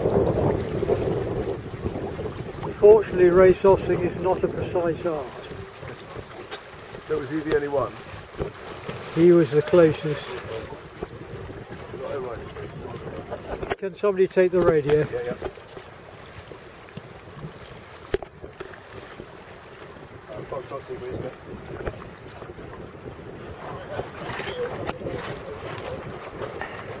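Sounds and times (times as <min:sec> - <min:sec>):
wind buffeting microphone: 0:00.0 - 0:13.8, 0:14.4 - 0:27.0
choppy water: 0:00.0 - 0:27.0.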